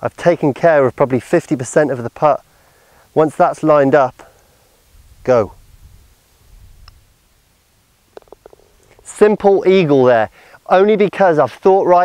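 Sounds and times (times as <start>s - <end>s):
golf ball dropping into cup: 8.1s - 9.0s.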